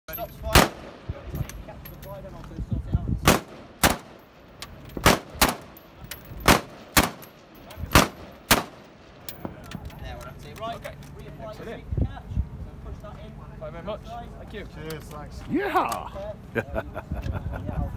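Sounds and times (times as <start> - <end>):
rifle single shots: 0.5 - 1.6, 3.2 - 9.5.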